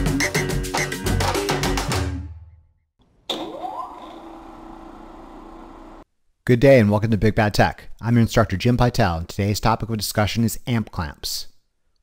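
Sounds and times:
electric motor whining and humming: 4.0s - 6.0s.

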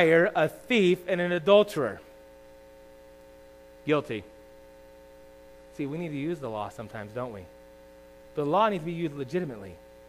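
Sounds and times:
faint hum of held tones: 0.0s - 10.0s.

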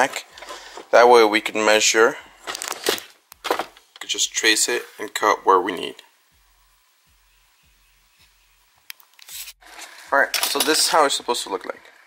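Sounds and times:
faint pulsing low hum: 3.2s - 8.9s.

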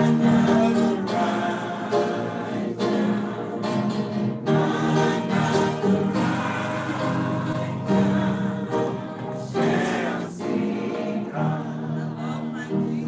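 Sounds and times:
choir singing gospel: 0.0s - 13.0s.

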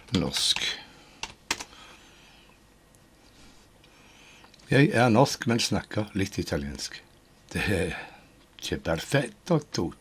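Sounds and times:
keyboard key clicks: 1.2s - 1.7s.

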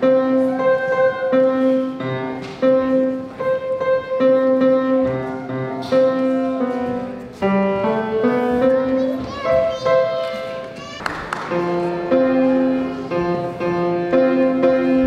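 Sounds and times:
grand piano slow melody: 0.0s - 15.0s.

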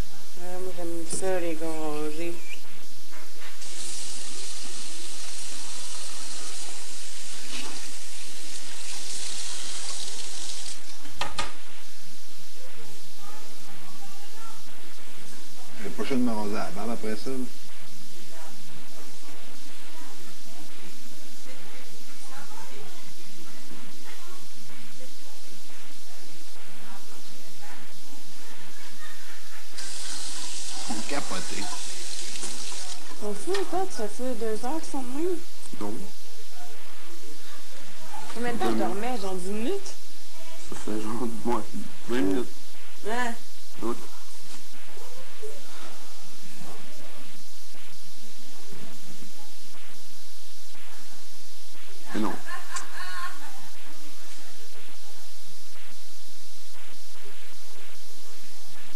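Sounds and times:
tap water running into sink: 8.6s - 10.8s.

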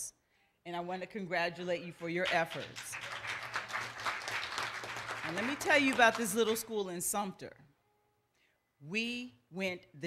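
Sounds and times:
congregation applauding: 2.2s - 6.7s.

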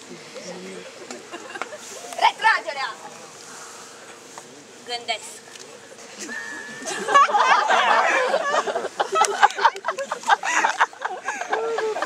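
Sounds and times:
people laughing: 0.9s - 2.2s, 6.1s - 12.0s
high calls rising and falling: 6.2s - 8.6s.

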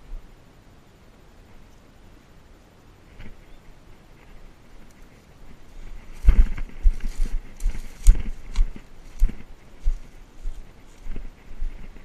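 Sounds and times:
brush rustling: 3.0s - 12.0s
footsteps on dry dirt: 4.2s - 12.0s.

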